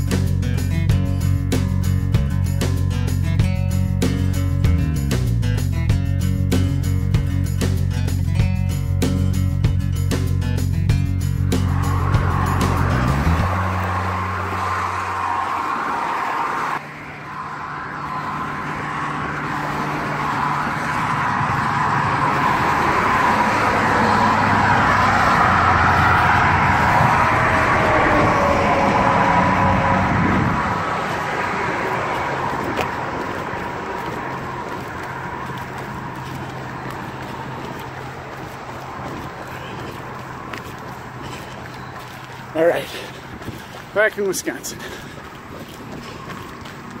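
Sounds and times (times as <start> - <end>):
highway traffic: 0.0 - 47.0.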